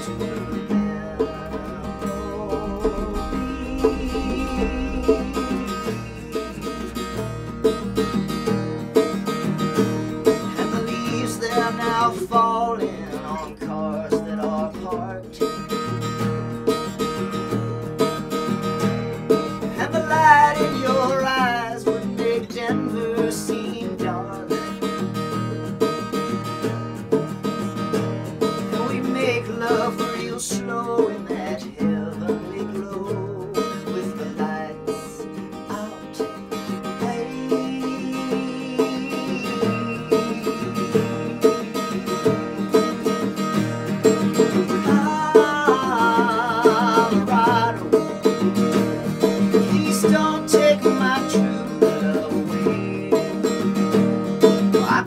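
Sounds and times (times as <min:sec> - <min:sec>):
acoustic guitars strummed: 0:00.0 - 0:55.0
hand drum beats: 0:00.0 - 0:55.0.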